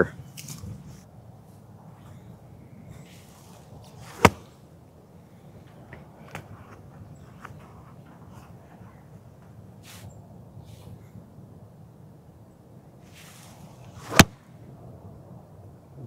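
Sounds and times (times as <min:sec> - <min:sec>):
faint outdoor background: 0:00.0 - 0:16.0
golf club impact crack: 0:03.2 - 0:04.7, 0:13.1 - 0:14.4.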